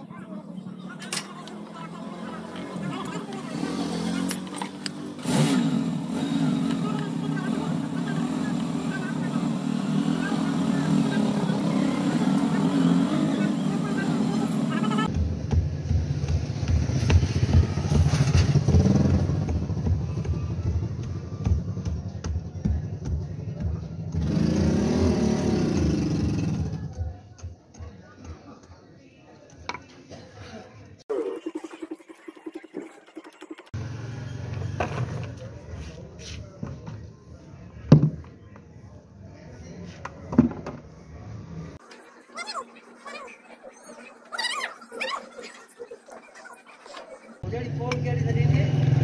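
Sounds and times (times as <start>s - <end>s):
vehicle engine passing by: 16.8s - 21.4s, 24.2s - 26.8s, 33.8s - 35.6s, 47.6s - 49.0s.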